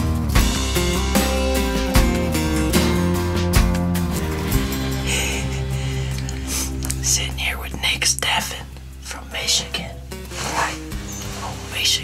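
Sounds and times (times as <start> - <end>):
soft background music: 0.0 - 12.0
hushed whispering: 6.2 - 12.0.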